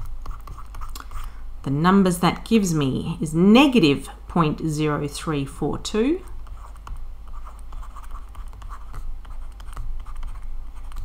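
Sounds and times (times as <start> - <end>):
stylus tapping and scratching: 0.0 - 1.3, 6.2 - 11.0
steady low hum: 0.0 - 11.0.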